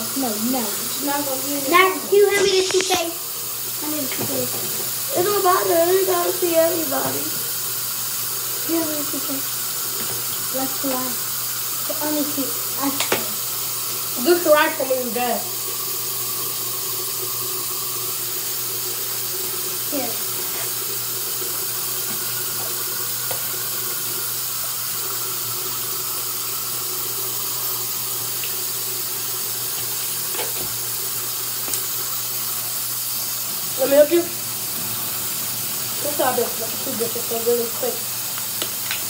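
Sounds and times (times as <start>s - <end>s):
tap running into sink: 1.8s - 3.2s, 3.8s - 7.5s, 9.1s - 11.2s, 12.8s - 13.4s, 19.9s - 24.8s, 28.2s - 32.1s, 34.6s - 39.0s.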